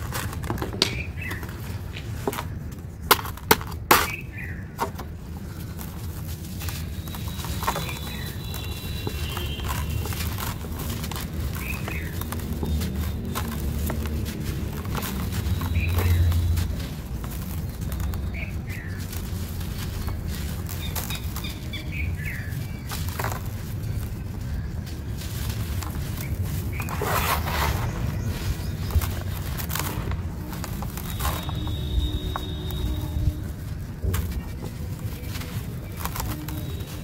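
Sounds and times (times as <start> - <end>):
cement lumps crushed by hand: 0.0 - 37.0
small crackles: 0.0 - 37.0.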